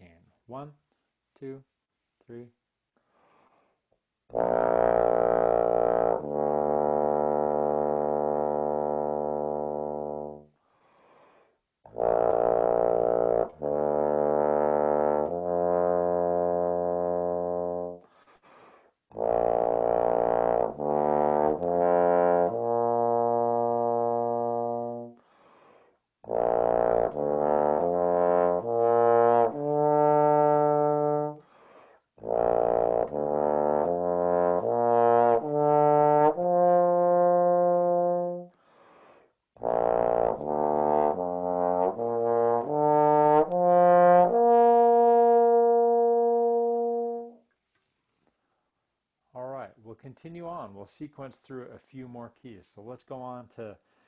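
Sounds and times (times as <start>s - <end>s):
bass trombone playing arpeggios: 4.3s - 10.4s, 11.9s - 18.0s, 19.1s - 25.2s, 26.2s - 31.4s, 32.2s - 38.5s, 39.6s - 47.4s.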